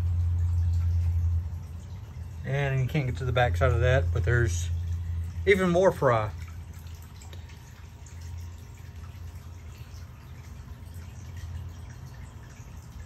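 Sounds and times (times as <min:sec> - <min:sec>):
low hum of filter: 0:00.0 - 0:13.0
water trickling: 0:00.0 - 0:13.0.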